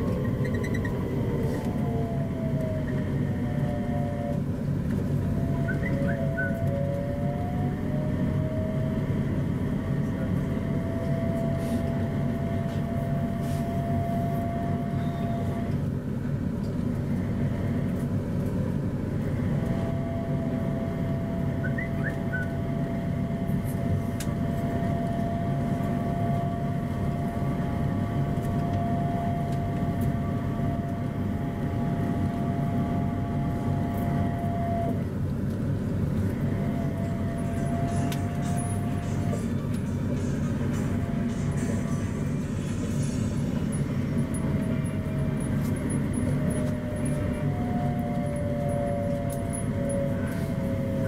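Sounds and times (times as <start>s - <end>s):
train rumble: 0.0s - 51.0s
motor whine: 43.6s - 51.0s.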